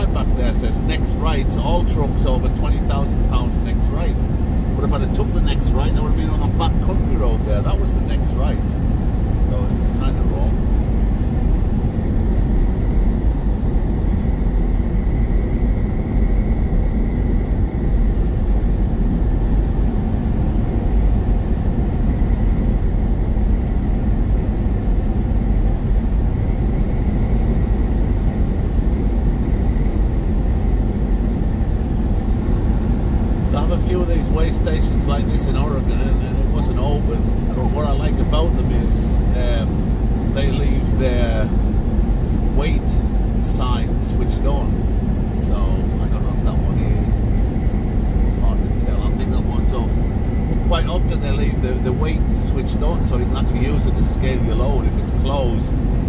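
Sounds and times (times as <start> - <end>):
truck engine and tyres rumbling: 0.0 - 56.0.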